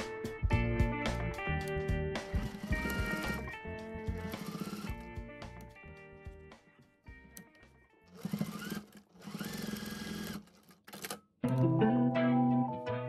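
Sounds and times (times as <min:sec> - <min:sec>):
background music with guitar: 0:00.0 - 0:08.1, 0:11.4 - 0:13.0
sewing machine stitching: 0:02.3 - 0:05.0, 0:08.1 - 0:11.2.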